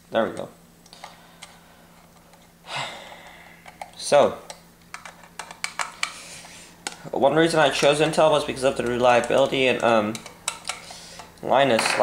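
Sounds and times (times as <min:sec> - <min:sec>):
breathy exhale: 0:02.6 - 0:03.7.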